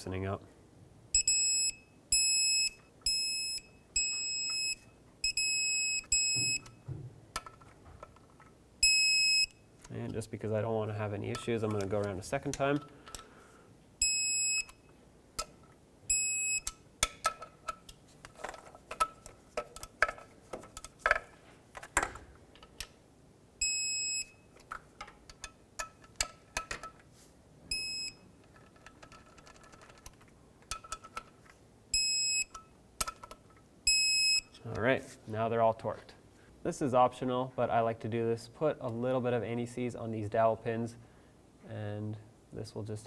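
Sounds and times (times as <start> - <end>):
torque wrench beeping: 1.2 - 6.8, 8.8 - 9.7, 14.0 - 14.9, 16.1 - 16.8.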